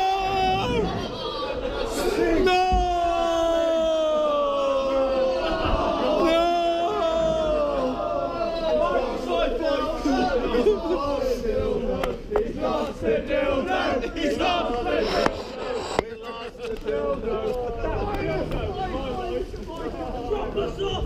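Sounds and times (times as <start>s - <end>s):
men shouting and chanting: 0.0s - 15.3s.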